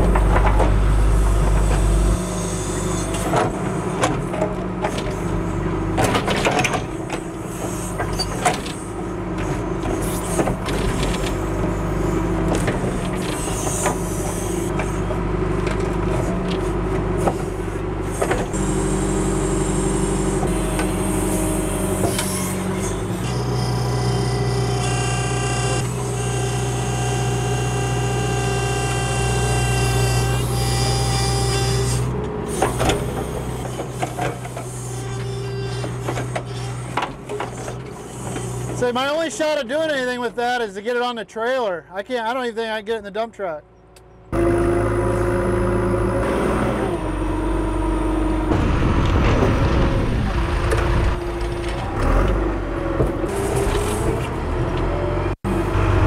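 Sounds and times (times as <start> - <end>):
diesel engine running under load: 0.0 - 42.6, 43.6 - 56.0.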